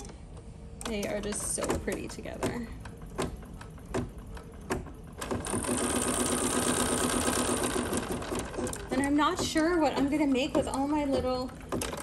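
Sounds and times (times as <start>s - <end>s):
embroidery machine stitching: 0.8s - 12.0s.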